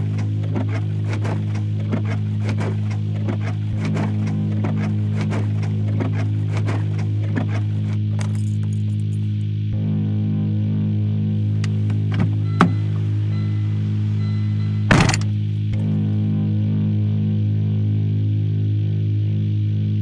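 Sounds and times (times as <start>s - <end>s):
sharp thump: 14.9s - 15.3s.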